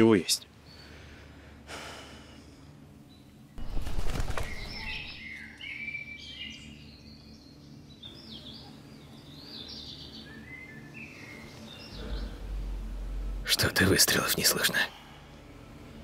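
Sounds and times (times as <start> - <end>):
birds chirping and calling: 2.5 - 15.4
faint low hum: 11.1 - 16.0.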